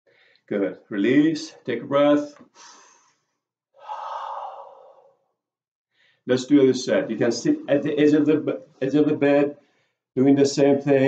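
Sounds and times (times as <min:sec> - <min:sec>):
man exhaling breathily: 0:02.5 - 0:03.2, 0:03.8 - 0:05.2.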